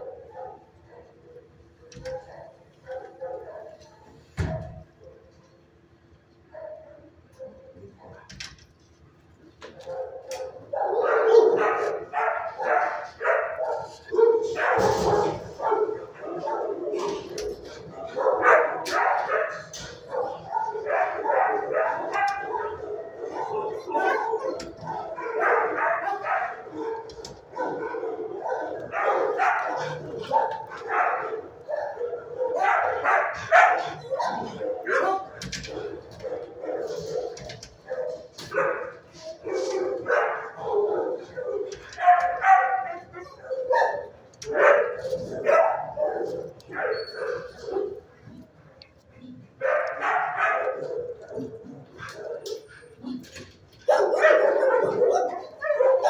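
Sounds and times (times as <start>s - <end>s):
dogs barking: 0.0s - 5.4s, 6.4s - 8.3s, 9.6s - 56.0s.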